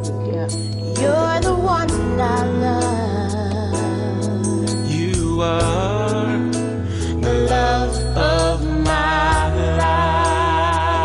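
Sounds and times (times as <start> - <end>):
slow song with singer: 0.9 - 11.0.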